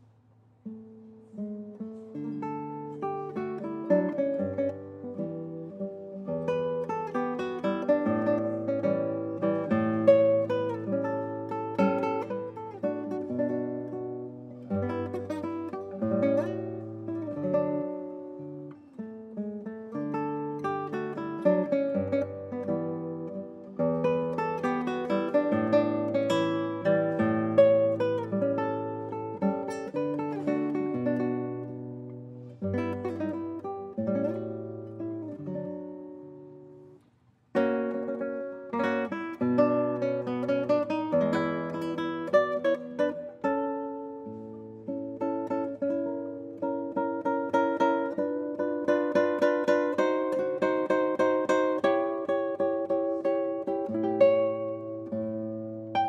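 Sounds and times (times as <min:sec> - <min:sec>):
solo classical guitar fingerstyle: 0:00.0 - 0:56.0.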